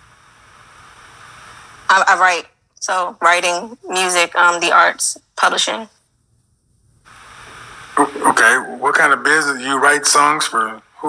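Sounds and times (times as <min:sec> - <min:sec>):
video call hiss: 0:00.0 - 0:11.0
woman speaking: 0:01.9 - 0:05.9.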